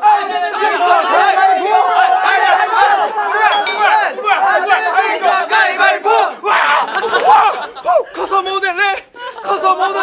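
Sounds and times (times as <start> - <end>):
young men shouting: 0.0 - 6.8
laughter: 6.6 - 8.3, 9.0 - 10.0.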